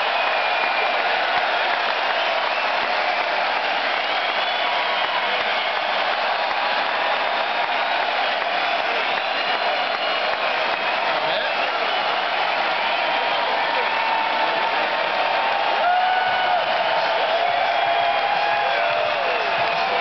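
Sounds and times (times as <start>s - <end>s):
crowd clapping: 0.0s - 20.0s
crowd shouting: 0.0s - 20.0s.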